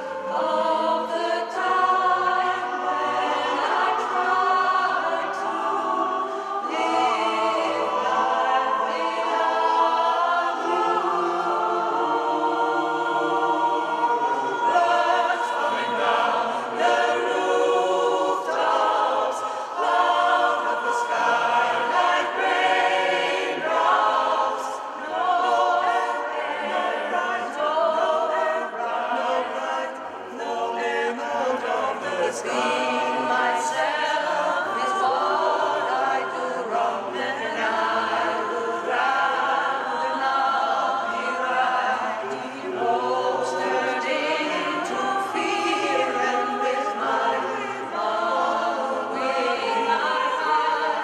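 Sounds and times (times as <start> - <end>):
mixed choir singing a cappella: 0.0 - 51.0.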